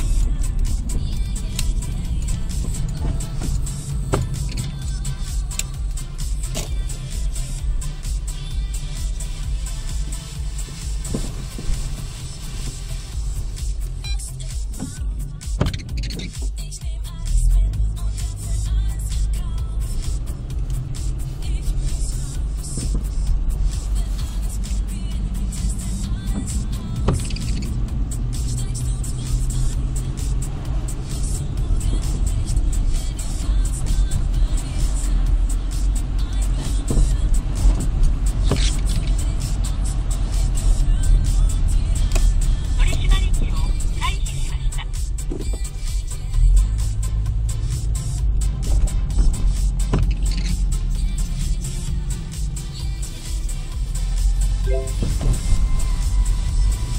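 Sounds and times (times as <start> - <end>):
car engine and tyres rumbling: 0.0 - 56.9
music playing: 0.0 - 56.9.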